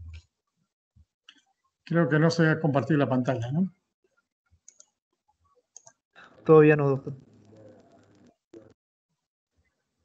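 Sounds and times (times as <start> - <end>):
person speaking: 6.4 - 8.0.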